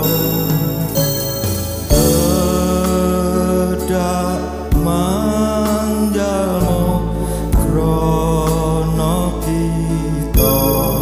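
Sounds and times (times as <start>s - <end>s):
drum stroke: 0.0s - 3.3s
electronic keyboard accompaniment: 0.0s - 11.0s
man singing a hymn: 0.0s - 11.0s.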